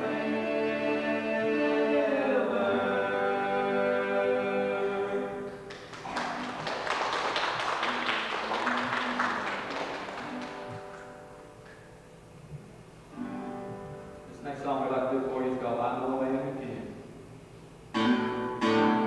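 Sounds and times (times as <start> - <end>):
people singing: 0.0 - 5.6
acoustic guitars: 0.0 - 19.0
applause: 5.7 - 11.8.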